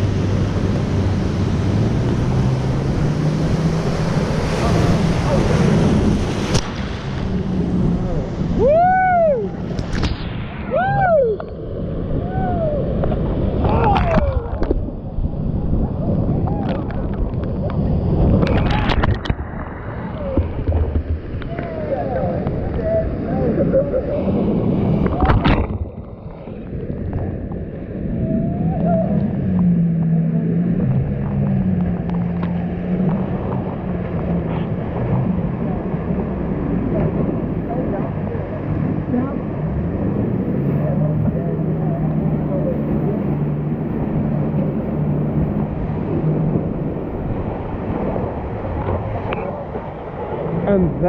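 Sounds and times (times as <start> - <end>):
low droning hum: 0.0 - 51.0
wave crashing over raft: 0.0 - 51.0
whitewater rushing and splashing: 0.0 - 51.0.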